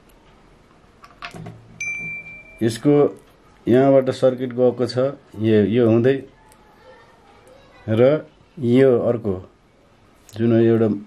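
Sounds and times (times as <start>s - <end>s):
electronic notification ding: 1.8s - 2.7s.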